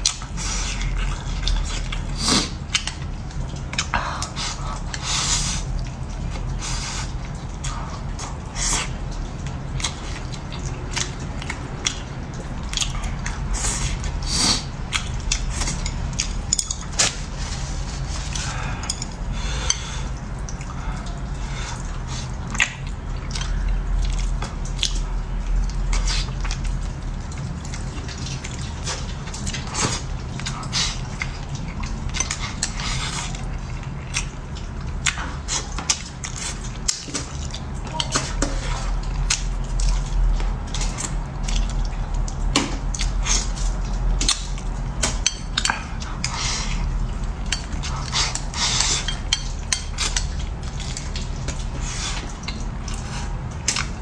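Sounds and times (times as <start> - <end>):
chewing and wet mouth sounds: 0.0 - 54.0
low steady hum: 0.0 - 54.0.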